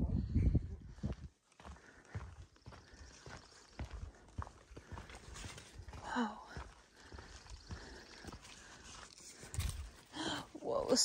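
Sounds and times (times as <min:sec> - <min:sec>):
footsteps on a trail: 0:00.4 - 0:11.0.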